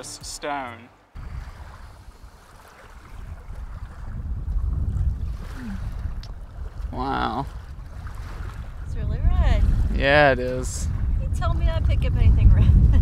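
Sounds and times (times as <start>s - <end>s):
wind buffeting microphone: 1.2s - 13.0s.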